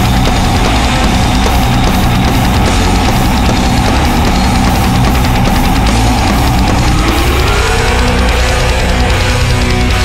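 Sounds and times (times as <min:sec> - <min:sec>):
distorted heavy metal guitars: 0:00.0 - 0:10.0
driving drum kit: 0:00.0 - 0:10.0.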